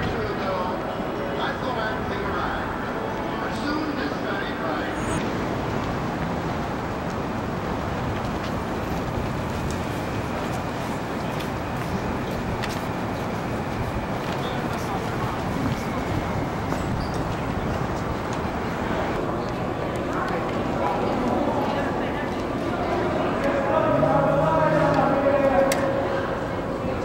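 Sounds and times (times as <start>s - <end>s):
faint voices: 0.0s - 5.3s, 7.9s - 27.0s
traffic: 0.0s - 27.0s.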